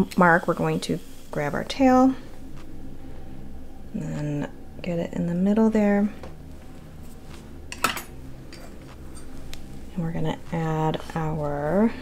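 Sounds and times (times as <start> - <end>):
low steady hum: 0.0 - 12.0
light metallic clicks and clinks: 7.7 - 9.4.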